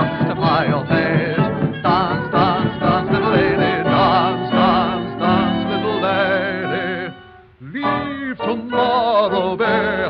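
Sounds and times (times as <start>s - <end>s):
old dance band recording: 0.0s - 10.0s.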